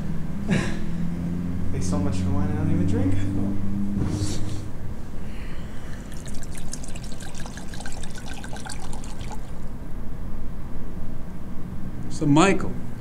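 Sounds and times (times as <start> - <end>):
wine pouring into glass: 5.6 - 9.8.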